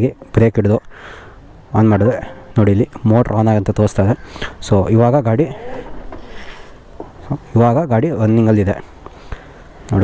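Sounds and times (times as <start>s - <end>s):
man talking: 0.0s - 0.9s, 1.7s - 6.0s, 7.2s - 9.0s
high-pitched tone: 1.8s - 3.1s.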